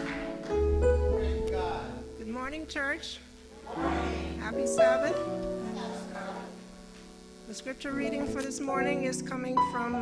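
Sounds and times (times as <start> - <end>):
church praise band: 0.0 - 8.8.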